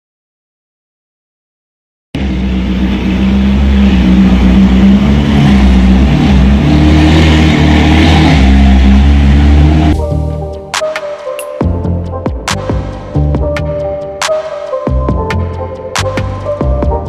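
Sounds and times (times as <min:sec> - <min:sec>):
sports car engine running: 0:02.2 - 0:10.8, 0:11.6 - 0:14.3, 0:14.9 - 0:17.0.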